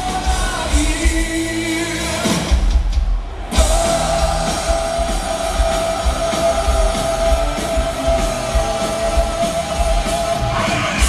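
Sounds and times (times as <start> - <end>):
hard rock band playing live: 0.0 - 11.0.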